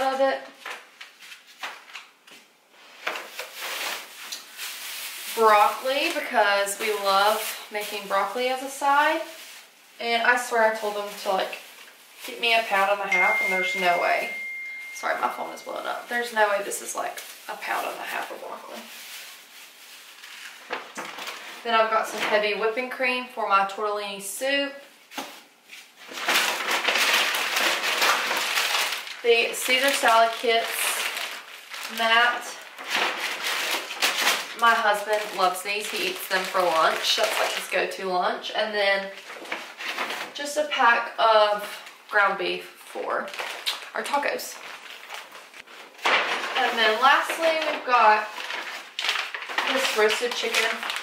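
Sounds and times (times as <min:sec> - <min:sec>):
plastic bags rustling: 0:00.0 - 0:51.0
plastic packaging crinkling: 0:00.4 - 0:23.2, 0:24.9 - 0:38.2, 0:39.0 - 0:51.0.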